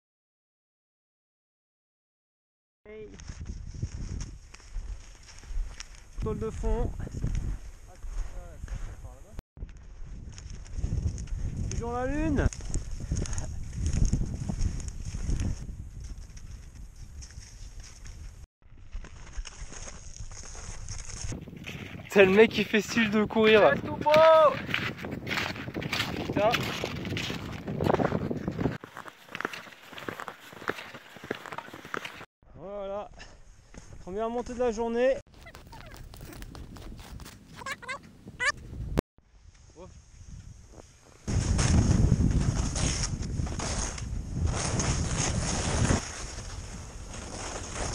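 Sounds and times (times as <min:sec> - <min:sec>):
wind rumble on microphone: 0:02.9 - 0:28.8, 0:35.6 - 0:47.9
skis and poles crunching snow: 0:03.0 - 0:32.3, 0:39.5 - 0:47.9.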